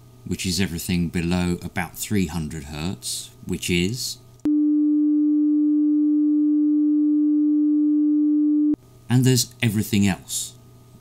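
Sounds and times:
sine test tone: 0:04.5 - 0:08.8.

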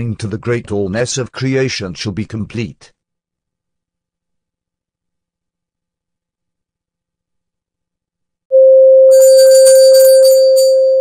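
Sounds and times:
high tinkling chimes: 0:09.1 - 0:11.0.

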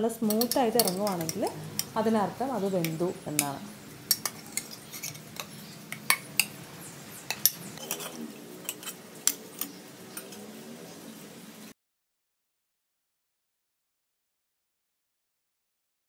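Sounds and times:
metal and crockery clinking: 0:00.2 - 0:10.5.

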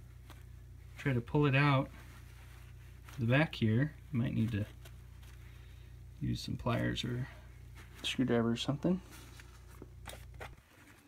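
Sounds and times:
low steady hum: 0:00.0 - 0:11.0.

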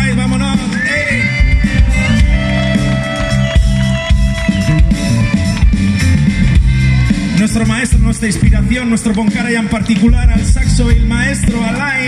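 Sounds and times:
drum kit: 0:00.0 - 0:12.0
electric bass line: 0:00.0 - 0:12.0
live band music: 0:00.0 - 0:12.0.

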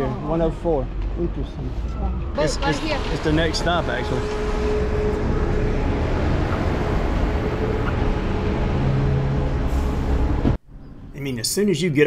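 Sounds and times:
rumbling street noise: 0:00.0 - 0:12.0
bus engine hum: 0:01.3 - 0:11.1.

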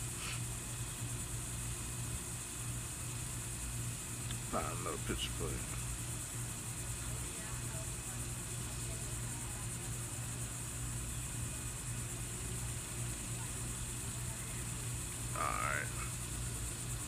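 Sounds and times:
faint hiss: 0:00.0 - 0:01.4
low background hum: 0:00.0 - 0:17.0.

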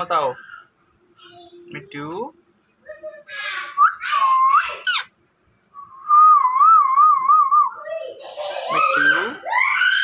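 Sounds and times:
parakeet chattering squawks: 0:03.4 - 0:05.2
parakeet warbling whistle: 0:03.7 - 0:05.1.

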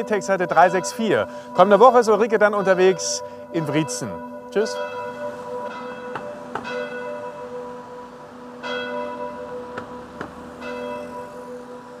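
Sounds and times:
church bell ringing: 0:00.0 - 0:12.0.

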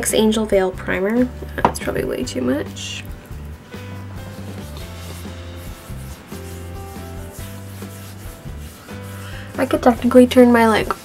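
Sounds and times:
soft background music: 0:00.0 - 0:11.0
palms rubbing skin: 0:03.0 - 0:11.0.

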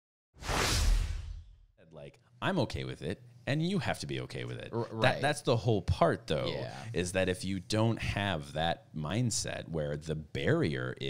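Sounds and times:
whoosh transition effect: 0:00.4 - 0:01.6.

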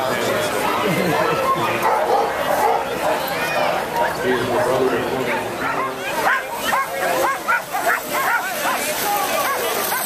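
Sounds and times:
crowd chatter: 0:00.0 - 0:10.0
dogs barking and yipping: 0:01.8 - 0:05.0, 0:05.6 - 0:10.0.

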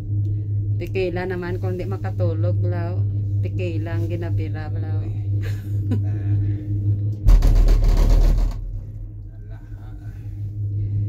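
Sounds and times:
low hum of moving cabin: 0:00.0 - 0:11.0
gondola cabin rattling: 0:07.2 - 0:10.6.

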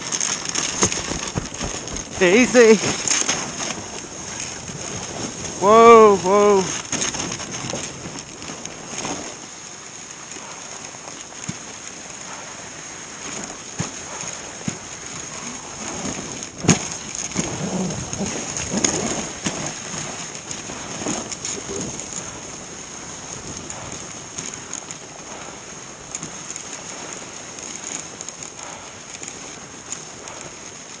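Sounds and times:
patter of dog paws: 0:00.0 - 0:05.5
sled knocking: 0:00.0 - 0:09.4, 0:10.7 - 0:31.0
sled runners hissing on snow: 0:00.0 - 0:31.0.

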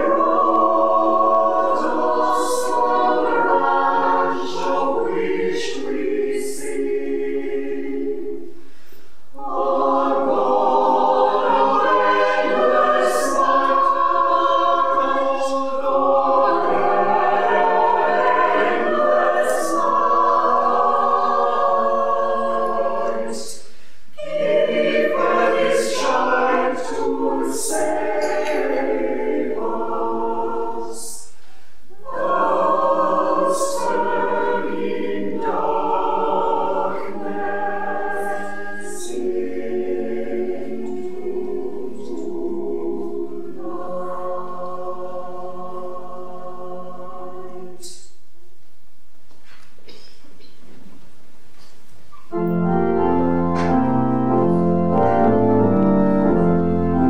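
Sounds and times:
choir singing a carol: 0:00.0 - 0:48.2, 0:52.2 - 0:57.0.

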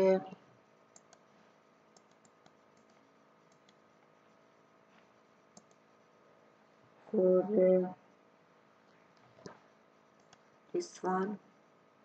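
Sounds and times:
low steady hum: 0:00.0 - 0:12.0
computer mouse clicks: 0:00.9 - 0:01.3, 0:01.9 - 0:03.9, 0:05.5 - 0:05.9, 0:08.8 - 0:10.5.

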